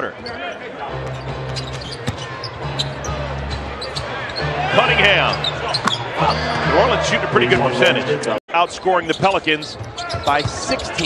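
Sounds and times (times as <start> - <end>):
arena noise: 0.0 - 11.0.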